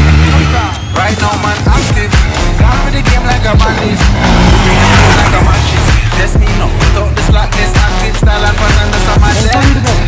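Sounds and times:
motorcycle engine: 0:00.0 - 0:01.0, 0:01.6 - 0:09.8
background music: 0:00.0 - 0:10.0
motorcycle passing: 0:03.1 - 0:06.3.

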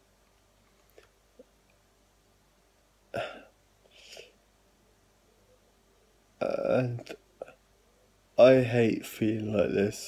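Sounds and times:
man's sharp throat catch: 0:03.1 - 0:03.5
soft breath: 0:03.8 - 0:04.4.

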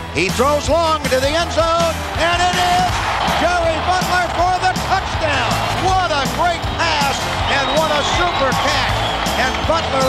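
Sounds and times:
background music: 0:00.0 - 0:10.0
excited sports commentary: 0:00.0 - 0:10.0.

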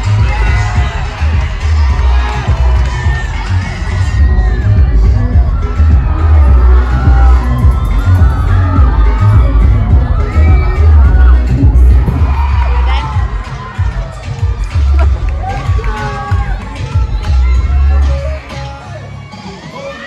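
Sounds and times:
crowd cheering and shouting: 0:00.0 - 0:20.0
loud music with heavy bass: 0:00.0 - 0:20.0.

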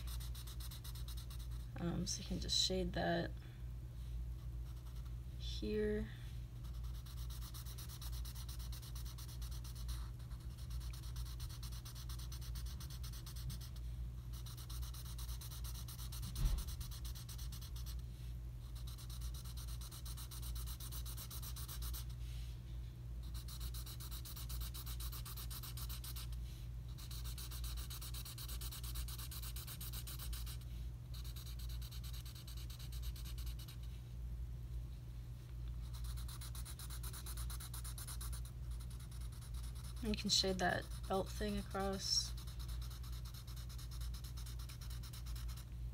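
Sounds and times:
marker scratching on paper: 0:00.0 - 0:01.7, 0:04.6 - 0:05.1, 0:06.6 - 0:18.0, 0:18.6 - 0:22.2, 0:23.2 - 0:33.9, 0:35.8 - 0:45.7
steady low hum: 0:00.0 - 0:45.9
thump: 0:16.2 - 0:16.8.

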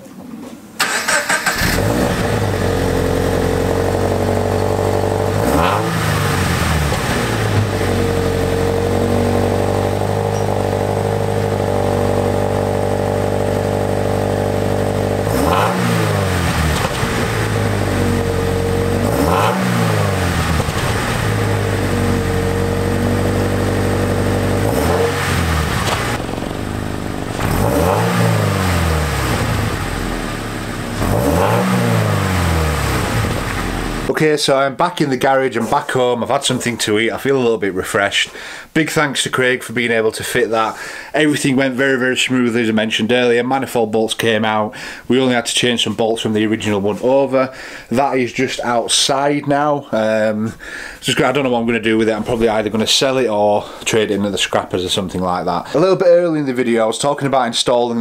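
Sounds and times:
car engine starting and idling: 0:00.8 - 0:34.1
engine revving: 0:00.8 - 0:34.1.

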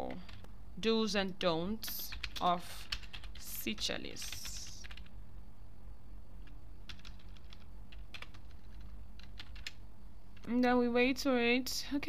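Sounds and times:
computer keyboard typing: 0:00.0 - 0:00.4, 0:01.8 - 0:05.2, 0:06.4 - 0:10.5
low steady background hum: 0:00.0 - 0:12.0.

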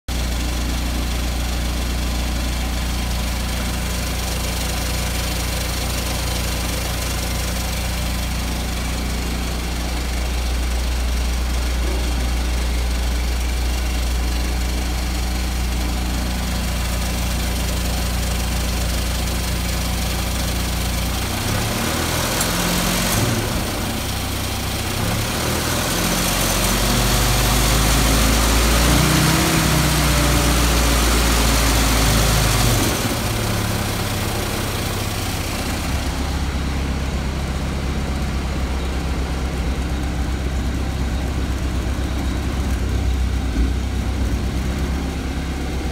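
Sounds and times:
car engine idling and revving: 0:00.1 - 0:45.9.

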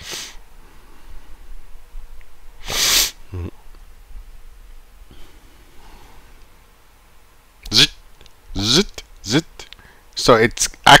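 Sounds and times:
sharp breath through nose: 0:00.0 - 0:01.1, 0:02.6 - 0:03.2
faint low hum: 0:00.2 - 0:11.0.

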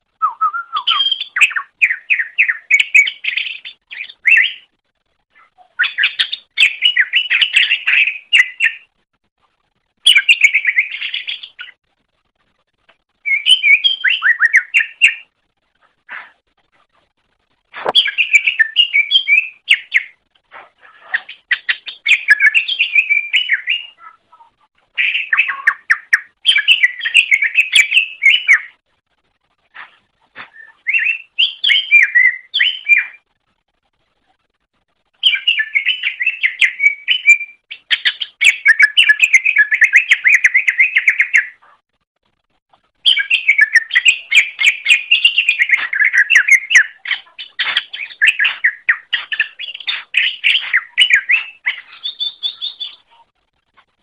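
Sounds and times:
bird singing chattering whistles: 0:00.2 - 0:04.7, 0:13.2 - 0:15.3, 0:17.8 - 0:20.2, 0:21.1 - 0:24.1, 0:25.0 - 0:28.8, 0:30.5 - 0:33.2, 0:35.2 - 0:41.6, 0:43.0 - 0:53.1.

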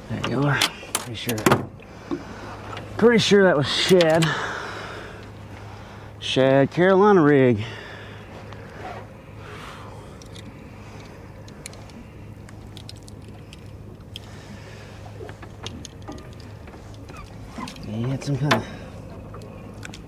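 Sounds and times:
steady low hum: 0:00.0 - 0:20.0
fishing gear clicking and knocking: 0:10.1 - 0:14.3, 0:15.2 - 0:20.0.

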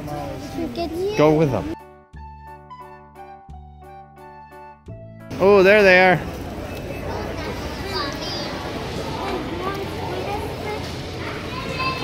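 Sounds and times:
child's voice: 0:00.0 - 0:01.4, 0:07.3 - 0:12.0
children chattering: 0:00.0 - 0:01.8, 0:05.8 - 0:12.0
steady murmur: 0:05.3 - 0:12.0.

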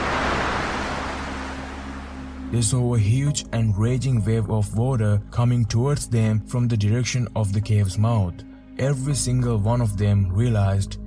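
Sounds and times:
rushing whoosh: 0:00.0 - 0:02.7
low music drone: 0:00.0 - 0:11.0.

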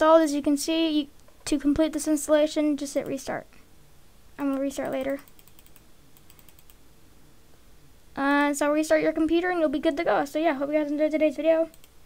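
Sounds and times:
keyboard and mouse clicking: 0:04.4 - 0:06.8, 0:11.7 - 0:12.0.

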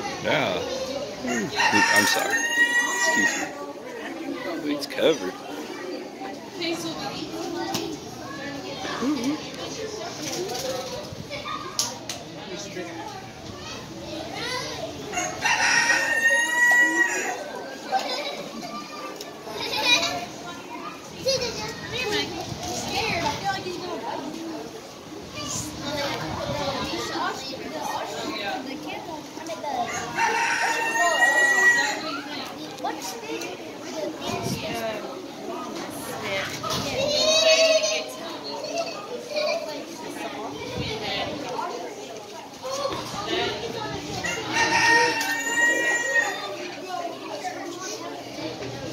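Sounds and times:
people and children chattering: 0:00.0 - 0:48.9
rooster crowing: 0:01.2 - 0:03.6, 0:15.1 - 0:17.5, 0:29.9 - 0:32.2, 0:44.2 - 0:46.5.

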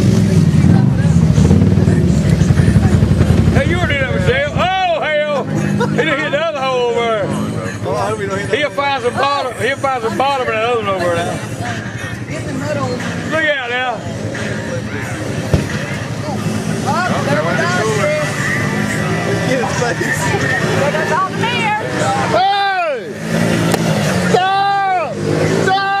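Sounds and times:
vehicle engine running: 0:00.0 - 0:26.0
loud whooping yells: 0:24.2 - 0:26.0.

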